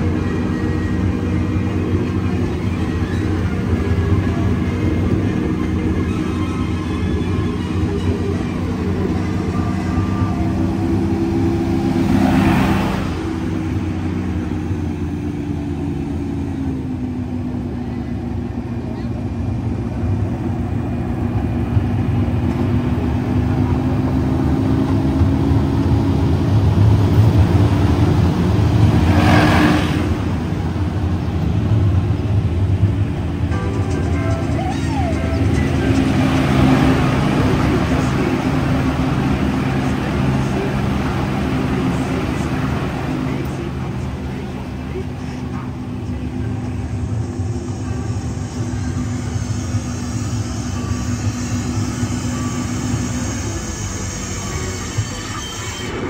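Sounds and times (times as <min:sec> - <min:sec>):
ride train rumbling on track: 0:00.0 - 0:56.0
music: 0:00.2 - 0:10.8, 0:33.5 - 0:37.4
people's voices: 0:33.5 - 0:56.0.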